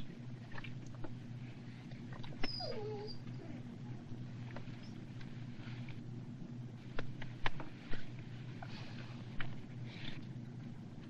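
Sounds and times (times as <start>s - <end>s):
dog whining: 2.4s - 3.8s.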